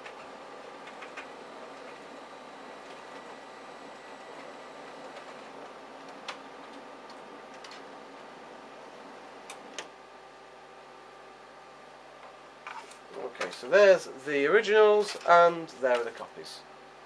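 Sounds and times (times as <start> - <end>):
printer motors whirring: 0.0 - 10.5.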